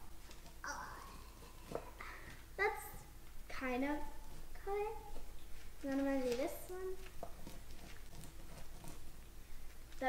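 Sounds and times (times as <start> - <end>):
pizza cutter crunching through cereal treat: 6.1 - 9.3.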